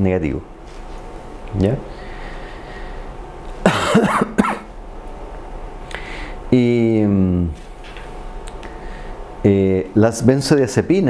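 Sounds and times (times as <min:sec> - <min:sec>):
man coughing: 0:03.6 - 0:04.7.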